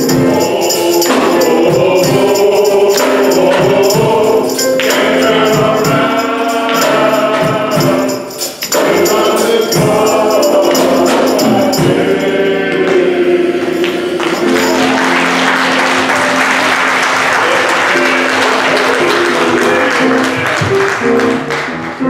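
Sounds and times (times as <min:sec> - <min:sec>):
men's chorus singing gospel: 0:00.0 - 0:21.1
band accompaniment: 0:00.0 - 0:22.0.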